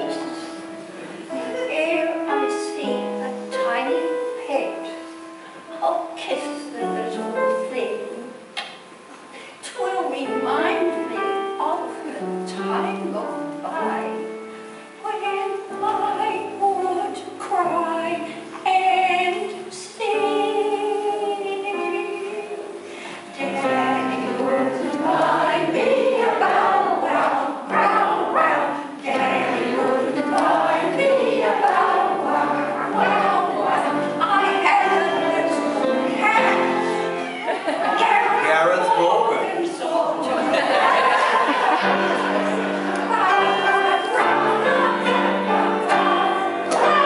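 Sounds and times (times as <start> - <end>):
piano accompaniment: 0.0 - 47.0
many voices singing together: 18.7 - 47.0.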